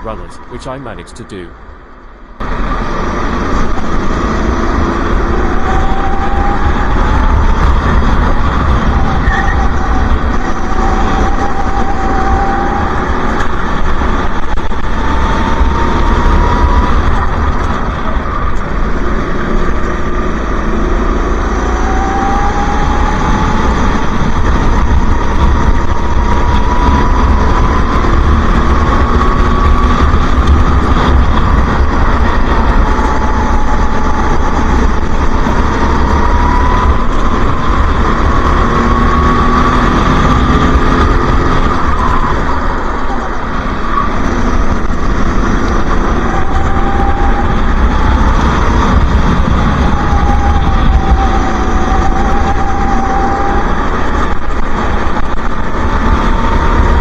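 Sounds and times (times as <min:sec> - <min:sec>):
go-kart engine racing: 0:00.0 - 0:57.0.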